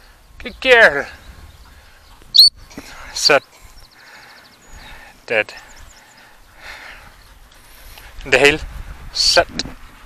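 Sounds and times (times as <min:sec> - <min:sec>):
faint wind rumble: 0:00.0 - 0:10.0.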